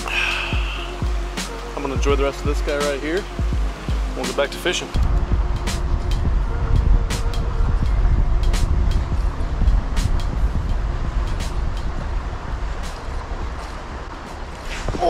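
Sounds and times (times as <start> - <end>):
wind rumble on microphone: 5.0 - 15.0.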